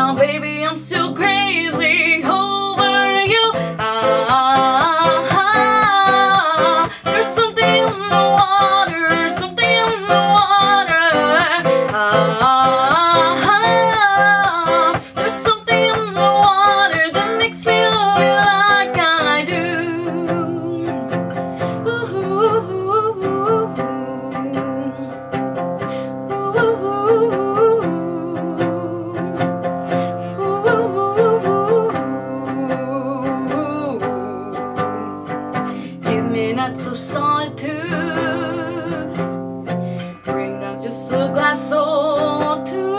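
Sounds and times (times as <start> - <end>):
woman singing wordless ah: 0.0 - 25.2, 25.8 - 39.4, 40.0 - 42.9
nylon-string classical guitar: 0.0 - 42.9.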